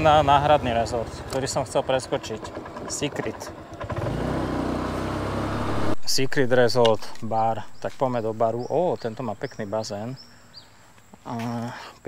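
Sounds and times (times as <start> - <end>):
motor scooter engine running: 0.0 - 6.0
road noise: 0.0 - 11.6.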